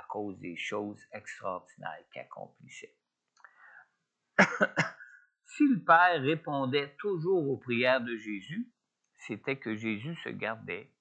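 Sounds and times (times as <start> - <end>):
man coughing: 4.4 - 5.1.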